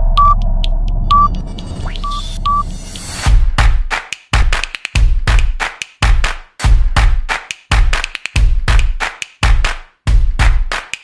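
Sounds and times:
steady low drone: 0.0 - 3.2
short high beeps: 0.2 - 0.4, 1.1 - 1.4, 2.0 - 2.7.

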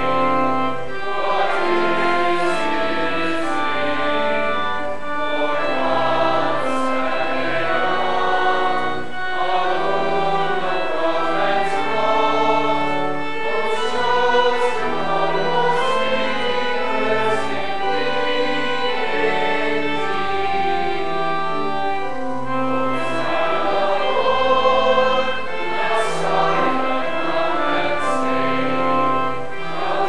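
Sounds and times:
congregation singing a hymn: 0.0 - 30.0
organ accompaniment: 0.0 - 30.0.

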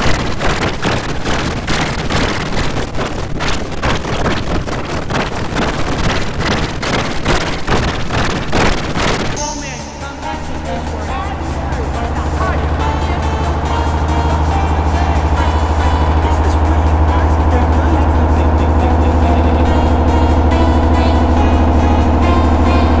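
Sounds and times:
distorted processed audio: 0.0 - 23.0
steady tones: 4.1 - 23.0
low drone: 9.4 - 23.0.

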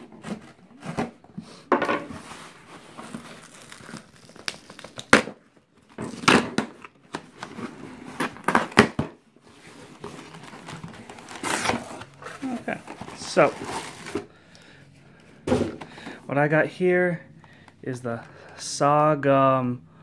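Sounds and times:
packing tape ripping off cardboard: 2.8 - 5.4, 6.0 - 9.0, 10.2 - 14.2.

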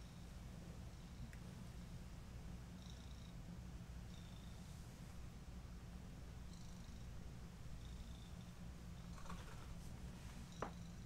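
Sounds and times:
cat purring: 6.4 - 11.0.

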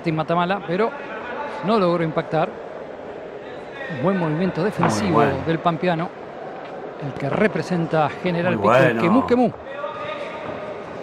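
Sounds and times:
low crowd murmur: 2.5 - 11.0
commentator speaking: 4.8 - 5.5, 8.4 - 9.6.

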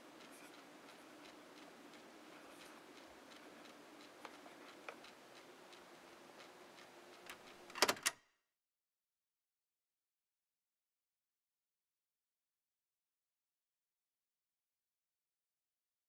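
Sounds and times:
handling ticks and clicks: 0.0 - 8.2
low steady hiss: 0.0 - 8.2.

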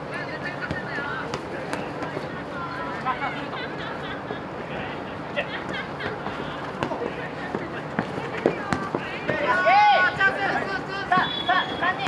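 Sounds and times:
players calling: 0.5 - 12.0
player shouting: 9.4 - 12.0.

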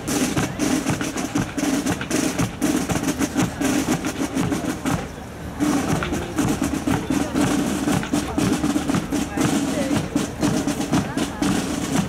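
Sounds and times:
bass drums: 0.0 - 12.0.

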